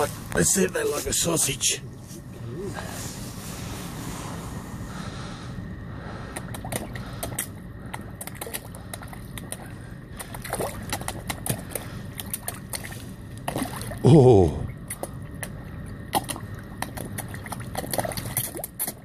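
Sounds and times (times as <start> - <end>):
low background rumble: 0.0 - 19.0
fish splashing at water surface: 6.4 - 14.0, 14.7 - 19.0.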